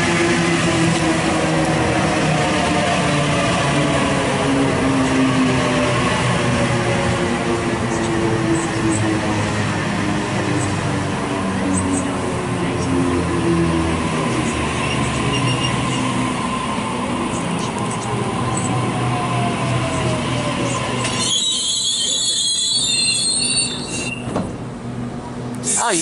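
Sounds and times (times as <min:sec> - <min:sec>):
train brake squeal: 0:15.0 - 0:16.0, 0:21.0 - 0:24.3.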